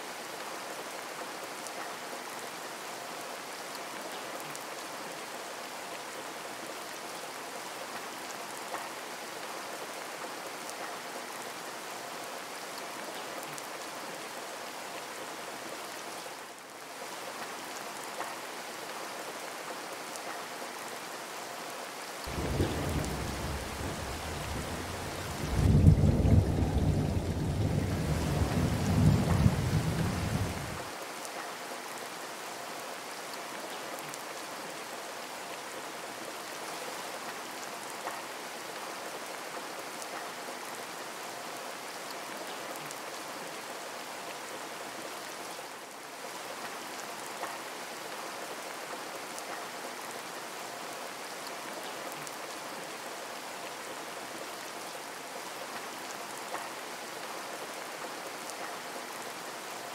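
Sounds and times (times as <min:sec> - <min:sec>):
rain falling: 0:00.0 - 0:59.9
thunder rumble: 0:22.3 - 0:30.8.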